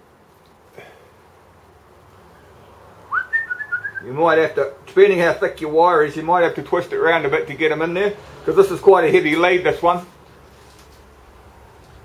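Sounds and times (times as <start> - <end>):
man whistling: 3.1 - 4.1.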